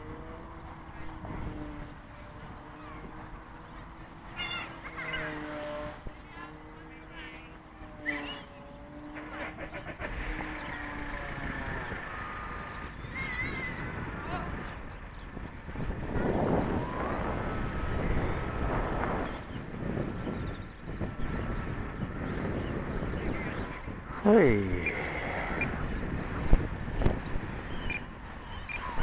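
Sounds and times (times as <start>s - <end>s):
model airplane motor droning: 0.0s - 29.0s.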